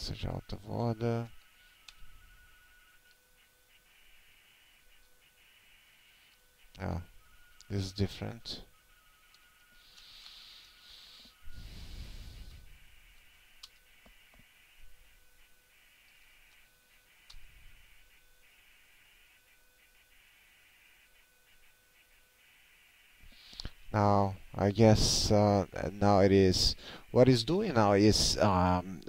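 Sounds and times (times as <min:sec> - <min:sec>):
high electrical whine: 0:00.0 - 0:29.0.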